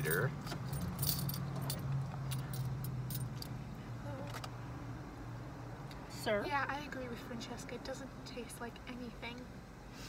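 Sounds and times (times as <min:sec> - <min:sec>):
keys jingling: 0:00.0 - 0:03.5
low car interior hum: 0:00.0 - 0:10.0.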